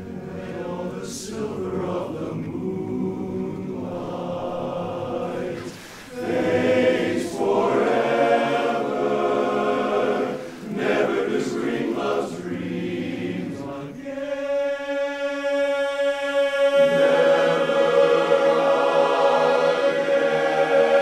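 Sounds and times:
men's chorus singing a cappella: 0:00.0 - 0:21.0.

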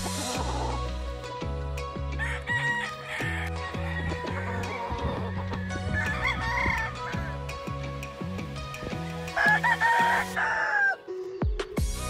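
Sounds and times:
background music with steady beat: 0:00.0 - 0:12.0
rooster crowing: 0:02.2 - 0:05.3, 0:05.9 - 0:07.3, 0:09.4 - 0:11.0.

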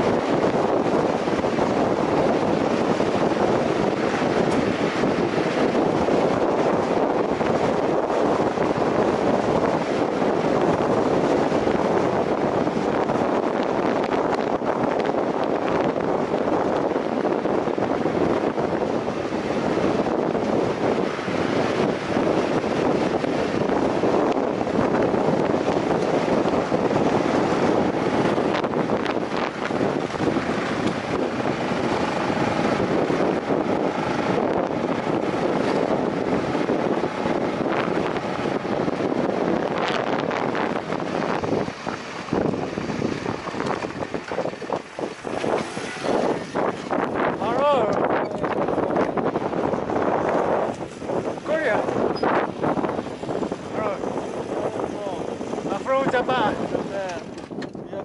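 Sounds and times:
wind rush on microphone: 0:00.0 - 0:58.0
motorcycle engine: 0:13.7 - 0:55.8
tyres on gravel: 0:41.7 - 0:47.4.

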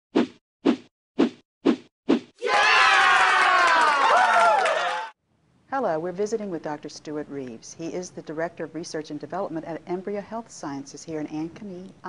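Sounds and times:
chorus of voices cheering: 0:02.4 - 0:05.2.

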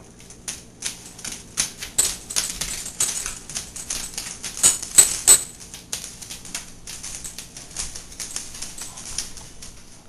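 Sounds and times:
dog toenails clicking on floor: 0:00.1 - 0:10.0.

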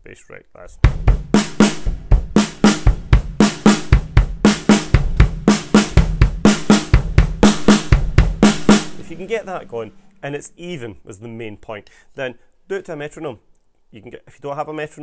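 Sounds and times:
snare drum strokes: 0:00.8 - 0:10.5
kick drum strokes: 0:00.8 - 0:10.9.

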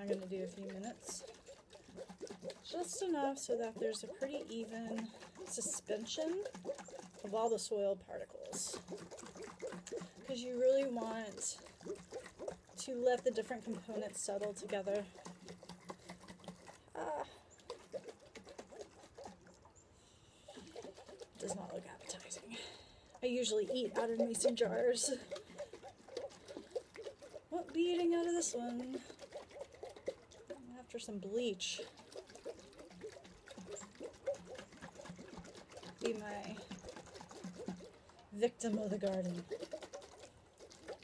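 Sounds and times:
slurry sloshing in a glass jar: 0:00.0 - 0:41.0.

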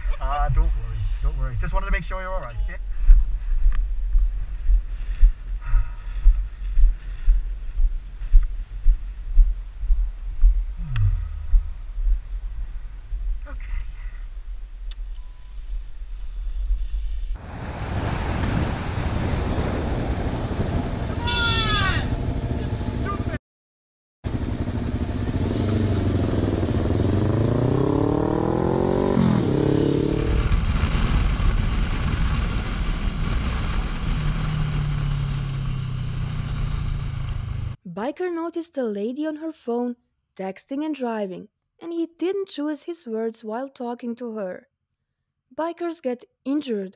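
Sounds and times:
road and wind noise: 0:00.0 - 0:23.4, 0:24.3 - 0:37.8
motorcycle engine revving: 0:24.3 - 0:37.8.

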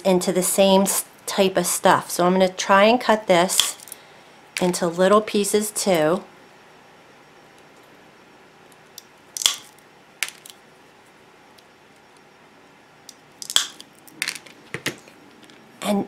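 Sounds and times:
nippers snapping tiles: 0:09.4 - 0:10.5, 0:13.4 - 0:14.4.

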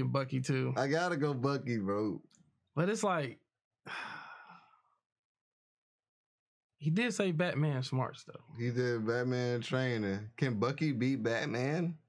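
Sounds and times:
man sighing: 0:03.9 - 0:04.8.

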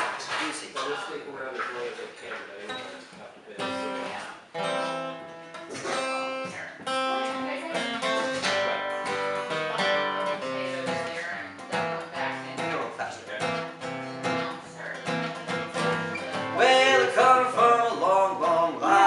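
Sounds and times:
acoustic guitars strumming chords: 0:00.0 - 0:19.0.

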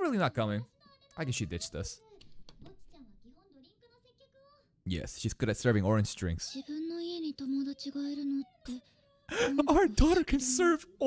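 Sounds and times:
girl's high-pitched voice speaking: 0:00.6 - 0:01.4, 0:02.0 - 0:04.8, 0:06.5 - 0:10.3.

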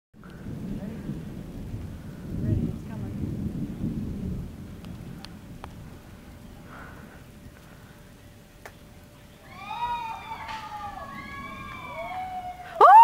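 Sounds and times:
thunder rumbling: 0:00.2 - 0:13.0.

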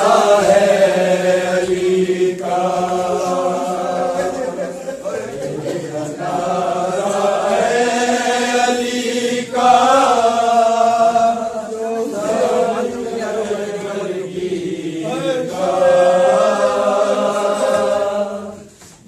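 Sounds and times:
men chanting a lament: 0:00.0 - 0:18.7.

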